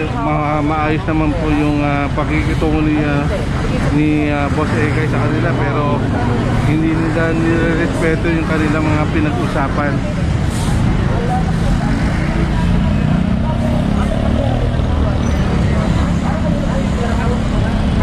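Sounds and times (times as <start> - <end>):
street voices: 0.0 - 18.0
vehicle engine rumbling: 0.0 - 18.0.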